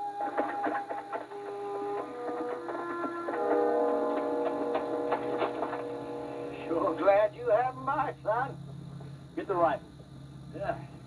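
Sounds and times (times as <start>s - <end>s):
film score held notes: 0.0s - 11.0s.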